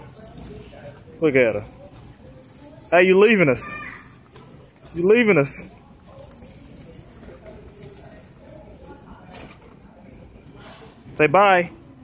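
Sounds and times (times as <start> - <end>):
shopping cart rolling on tiles: 0.0 - 10.6
store background noise: 0.0 - 12.0.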